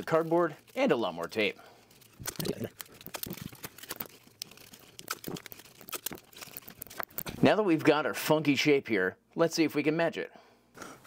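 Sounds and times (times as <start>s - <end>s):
cardboard and tape crinkling: 0.0s - 7.5s.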